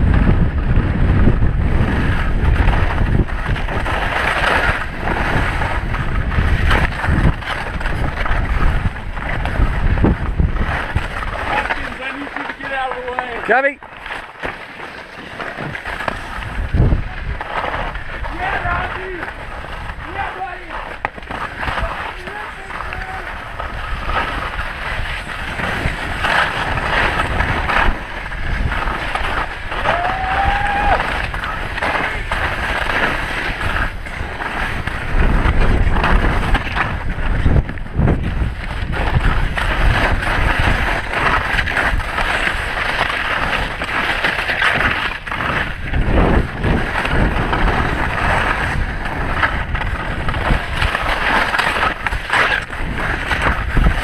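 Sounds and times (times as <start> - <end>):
wind buffeting microphone: 0.0 - 13.8, 15.5 - 54.0
skis scraping over snow: 0.0 - 54.0.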